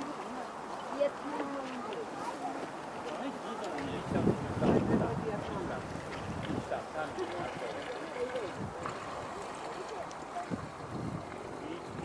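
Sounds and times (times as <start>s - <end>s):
distant people talking: 0.0s - 12.0s
wind hiss on microphone: 3.8s - 7.8s, 8.4s - 9.4s, 10.0s - 12.0s.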